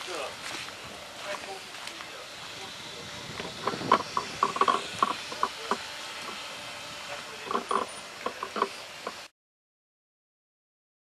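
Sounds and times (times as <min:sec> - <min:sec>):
steady hiss: 0:00.0 - 0:09.3.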